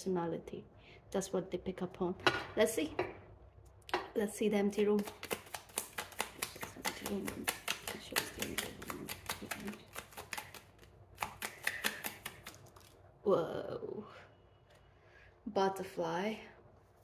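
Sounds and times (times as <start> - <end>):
cards shuffled by hand: 5.0 - 12.8.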